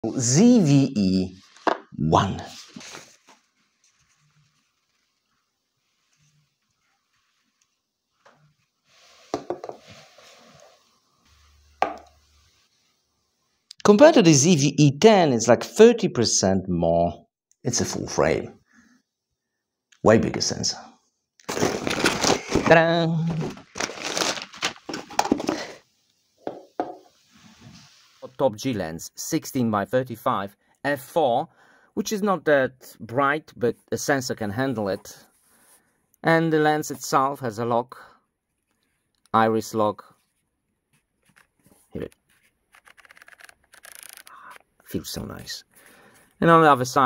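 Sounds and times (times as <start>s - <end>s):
plastic bag crinkling: 21.4s - 25.8s.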